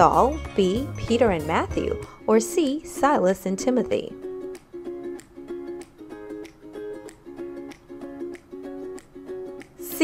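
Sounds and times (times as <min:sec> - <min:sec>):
plucked-string background music: 0:00.0 - 0:10.0.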